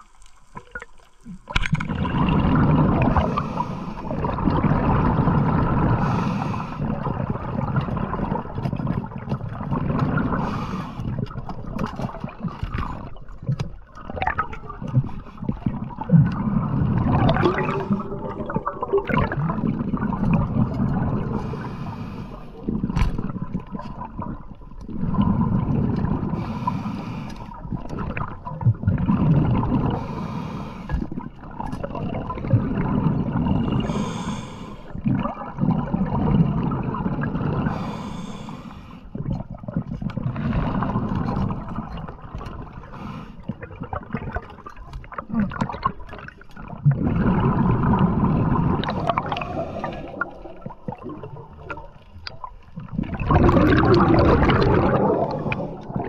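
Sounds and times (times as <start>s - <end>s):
muffled underwater water noise: 0.0s - 56.0s.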